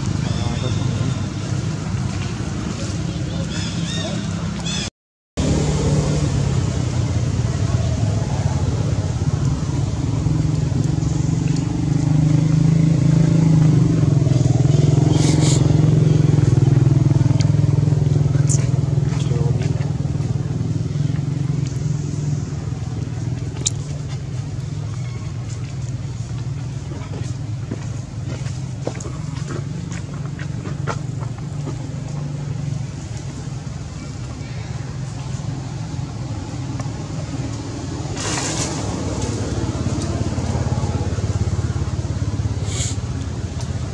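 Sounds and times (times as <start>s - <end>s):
engine drone: 5.4s - 43.9s.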